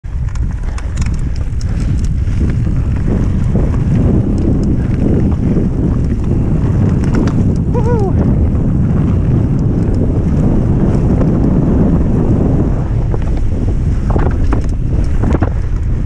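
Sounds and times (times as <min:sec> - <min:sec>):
bike clicks and rattles: 0:00.0 - 0:16.0
wind rushing over microphone: 0:00.0 - 0:16.0.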